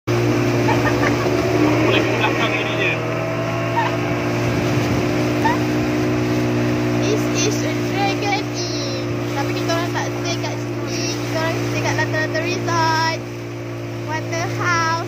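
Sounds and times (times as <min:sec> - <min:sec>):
motorboat engine running: 0:00.1 - 0:15.0
water noise: 0:00.1 - 0:15.0
wind: 0:00.1 - 0:15.0.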